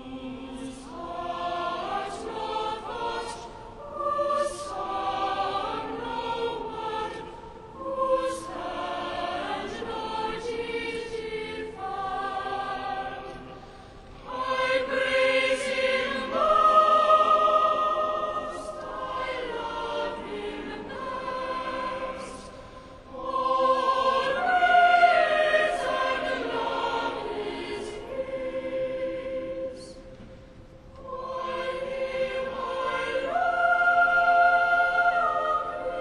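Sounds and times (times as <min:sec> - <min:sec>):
church choir singing: 0:00.0 - 0:36.0.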